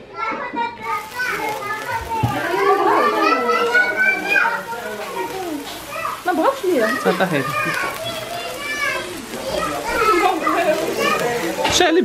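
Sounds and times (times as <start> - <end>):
people talking excitedly: 0.1 - 12.0.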